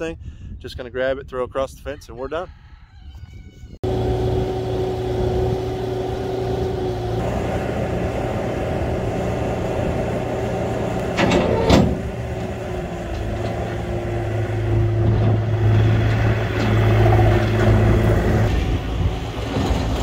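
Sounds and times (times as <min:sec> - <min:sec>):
diesel engine running: 0:03.8 - 0:20.0.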